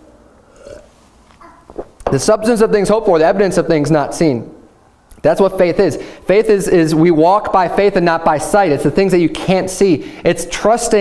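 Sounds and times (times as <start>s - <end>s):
man swallowing: 0.5s - 0.9s.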